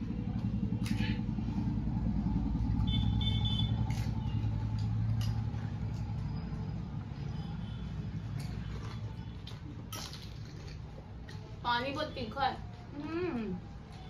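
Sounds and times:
low engine rumble: 0.0 - 14.0.

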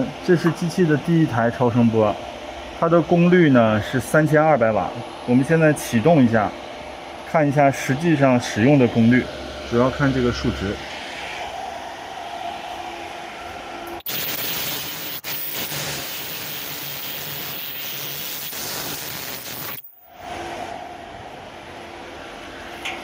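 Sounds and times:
ultrasonic welder high-pitched whine: 0.0 - 23.0
machine running hum: 1.7 - 23.0.

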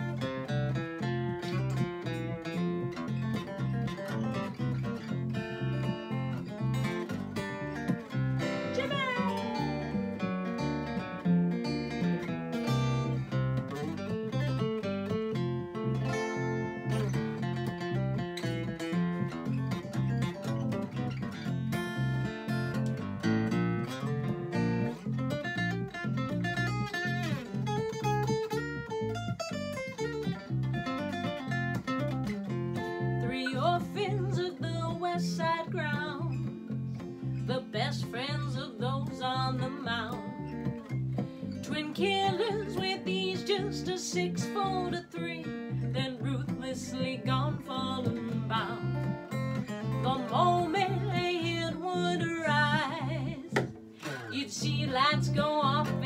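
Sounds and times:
acoustic guitar solo: 0.0 - 56.0
plucked electric bass line: 0.0 - 56.0.

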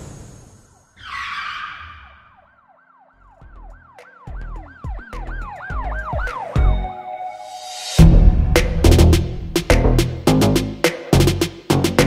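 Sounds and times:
siren-like wail: 0.8 - 7.5
whoosh and hit: 7.9 - 10.2
deep bass hits: 8.0 - 11.4.

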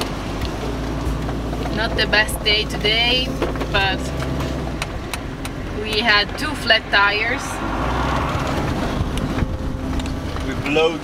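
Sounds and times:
truck engine and road rumble: 0.0 - 11.0
wind noise: 0.0 - 11.0.

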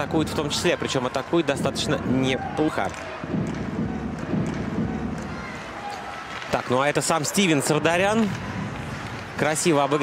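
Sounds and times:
low rink murmur: 3.0 - 10.0.

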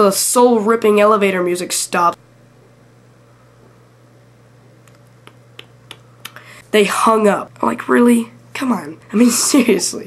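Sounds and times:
low steady hum: 0.0 - 10.0
person making sharp clicks: 4.8 - 6.5.

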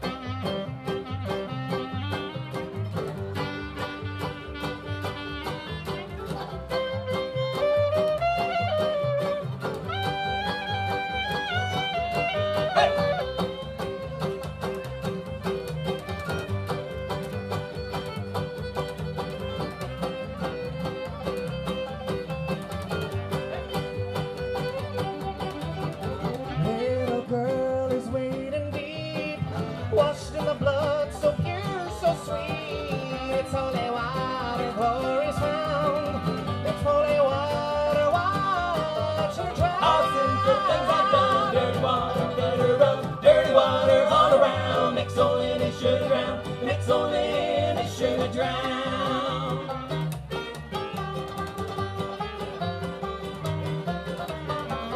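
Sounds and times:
bluegrass string band playing: 0.0 - 54.9.

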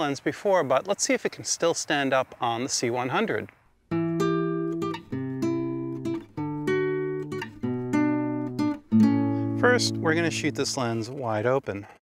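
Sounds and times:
guitar strummed chords: 3.9 - 11.0.

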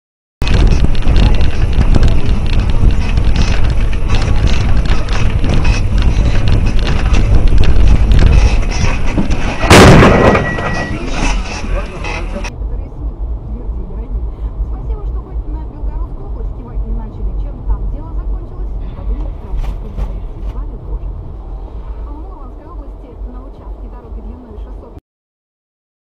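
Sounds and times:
car rattling over rough road: 0.4 - 12.5, 13.2 - 24.5
loud collision crash: 0.4 - 12.5.

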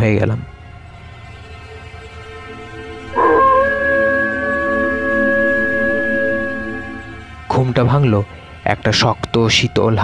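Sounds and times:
wolf howling: 3.1 - 7.3.

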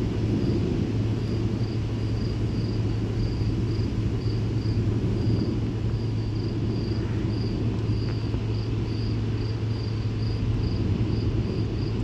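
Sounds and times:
crickets chirping: 0.0 - 12.0
low rumble: 0.0 - 12.0.

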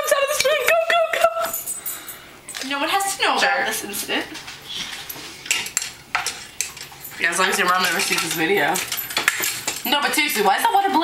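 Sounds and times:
hard objects clinking: 5.4 - 10.6.

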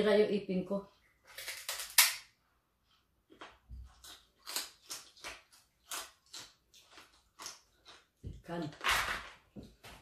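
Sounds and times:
crispy skin crunching when bitten: 3.3 - 9.4.

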